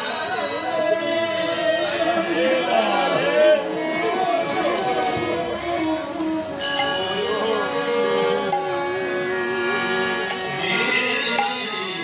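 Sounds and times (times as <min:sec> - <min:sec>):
devotional music: 0:00.0 - 0:12.0
held instrumental notes: 0:00.0 - 0:12.0
wavering singing voice: 0:00.0 - 0:12.0
bright ringing layer: 0:10.3 - 0:10.7.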